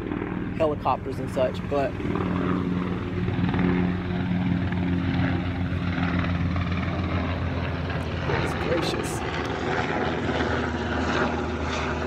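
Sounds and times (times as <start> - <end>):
helicopter flying overhead: 0.0 - 12.0.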